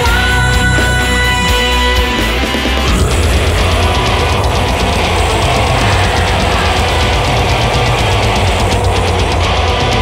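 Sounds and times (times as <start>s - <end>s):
black metal music: 0.0s - 10.0s.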